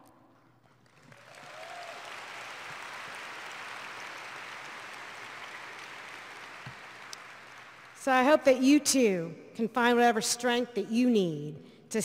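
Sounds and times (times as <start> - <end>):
audience applause: 0.8 - 8.0.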